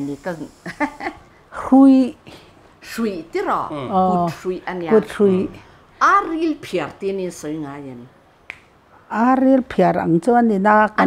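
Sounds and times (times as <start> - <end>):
person speaking: 3.5 - 6.6.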